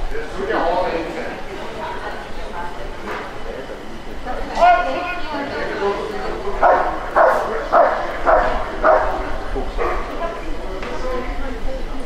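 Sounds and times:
dog barking: 6.6s - 10.2s.

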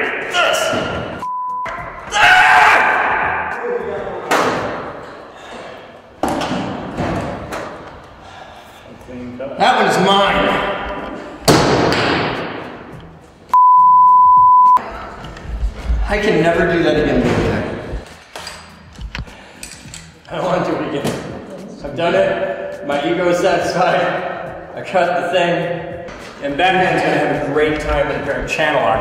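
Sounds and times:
censor beep tone: 1.2s - 1.8s, 13.5s - 14.8s
men talking: 3.6s - 4.3s, 8.9s - 10.8s, 16.0s - 18.0s, 20.3s - 29.0s.

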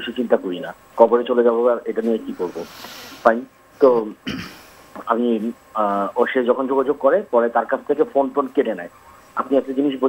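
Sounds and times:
soft breathy hiss: 0.0s - 6.3s, 8.3s - 9.6s.

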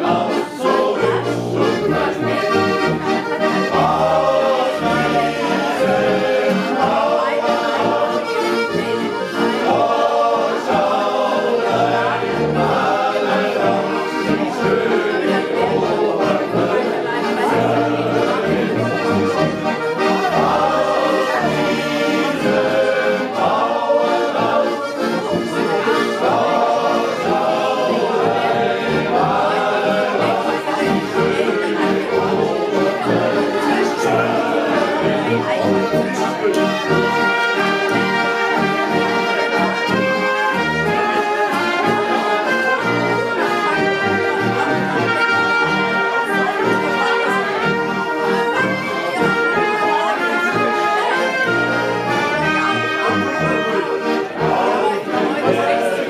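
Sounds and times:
men singing in chorus: 0.0s - 2.9s, 9.6s - 18.9s, 20.4s - 35.5s, 54.4s - 56.0s
accordion bass notes: 0.0s - 56.0s.

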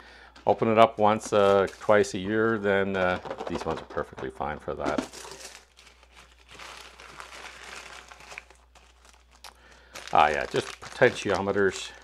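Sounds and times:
plastic packaging crinkling: 0.5s - 12.0s.

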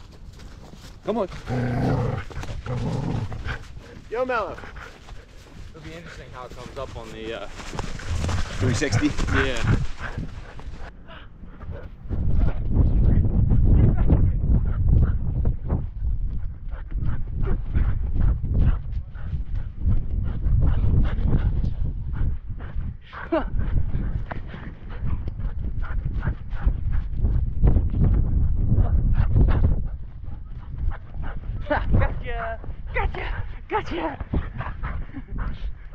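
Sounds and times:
wind on microphone: 0.0s - 5.7s, 6.6s - 35.9s
paw footfalls in snow: 0.0s - 10.8s
dog panting: 2.2s - 10.9s, 16.3s - 27.4s, 28.8s - 35.9s.

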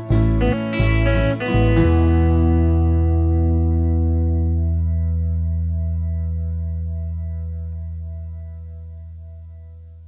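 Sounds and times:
guitar chord ringing out: 0.0s - 9.8s.

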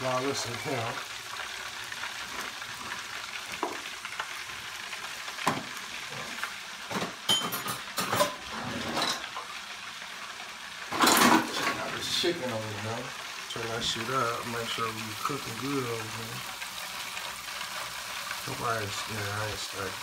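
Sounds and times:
food sizzling in a pot: 0.0s - 20.0s
kitchen utensils clattering: 5.5s - 9.5s, 10.9s - 12.0s.

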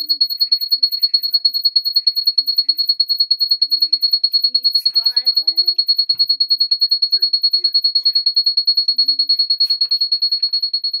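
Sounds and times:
electronic beeper pulsing rapidly: 0.0s - 10.5s
faint voices: 0.0s - 10.6s.

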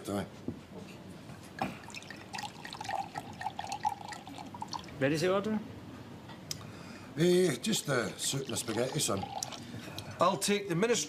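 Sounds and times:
drink glugging into glass: 1.6s - 5.0s, 8.2s - 9.7s.

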